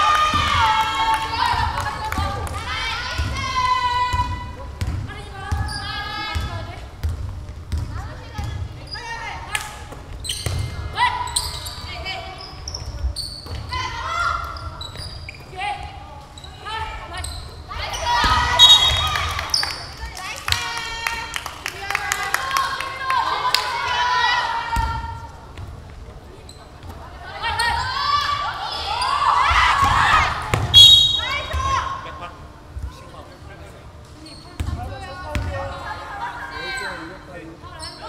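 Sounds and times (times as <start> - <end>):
players calling and shouting: 0.0 - 21.3, 26.4 - 38.0.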